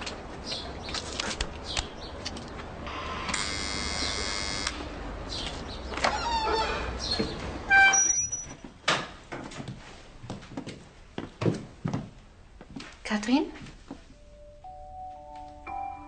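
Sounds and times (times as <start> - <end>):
electric buzz: 2.9 - 4.9
short squeaks: 6.0 - 8.6.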